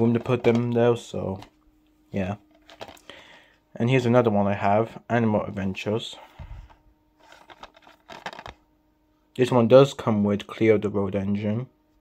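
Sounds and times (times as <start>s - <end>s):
plastic case clicking and rustling: 0.1s - 0.8s, 2.5s - 3.0s, 7.2s - 8.6s.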